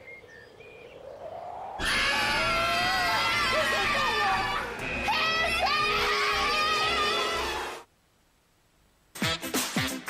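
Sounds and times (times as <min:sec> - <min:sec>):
voices yelling together: 0:01.8 - 0:07.8.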